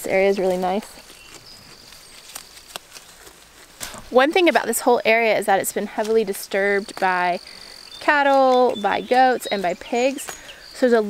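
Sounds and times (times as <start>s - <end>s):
goat tearing and chewing leaves: 0.0s - 5.0s, 5.7s - 7.1s
faint high insect tone: 6.6s - 11.0s.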